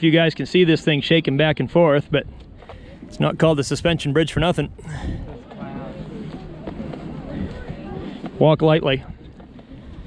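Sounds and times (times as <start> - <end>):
faint voices: 0.0 - 10.0
footsteps on wooden planks: 5.4 - 10.0.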